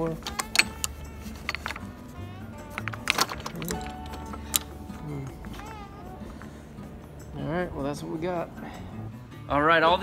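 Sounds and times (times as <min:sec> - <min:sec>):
golf clubs clinking in a bag: 0:00.0 - 0:08.9
steady low hum: 0:03.7 - 0:09.5.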